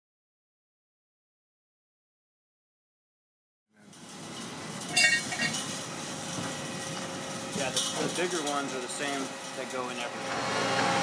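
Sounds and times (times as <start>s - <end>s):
construction site noise: 3.7s - 11.0s
metal striking metal: 3.8s - 10.1s.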